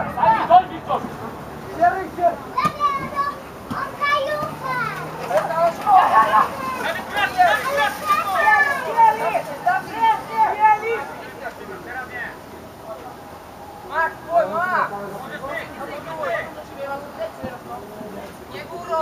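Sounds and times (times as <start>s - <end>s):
children shouting: 2.5s - 11.1s.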